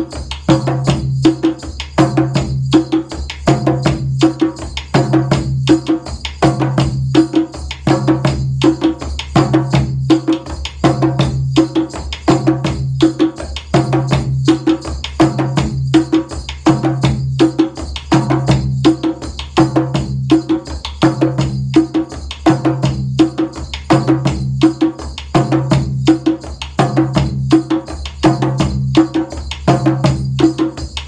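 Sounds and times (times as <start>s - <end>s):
hand drums playing: 0.0s - 31.0s.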